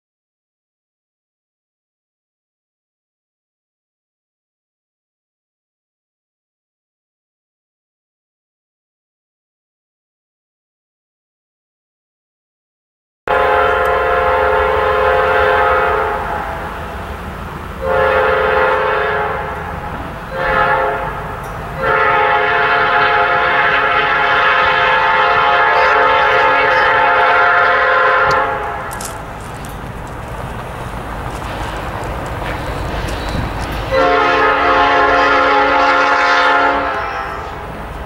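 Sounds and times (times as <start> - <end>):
train air horn blasts: 13.3 - 29.2, 32.4 - 37.8
train rumble: 13.3 - 38.0.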